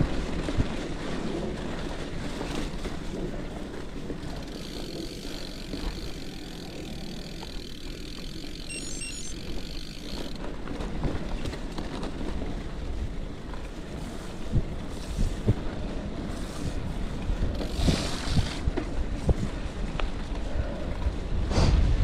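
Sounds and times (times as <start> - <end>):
bike tyres rolling on dirt: 0.0 - 22.0
wind rumbling on microphone: 0.0 - 22.0.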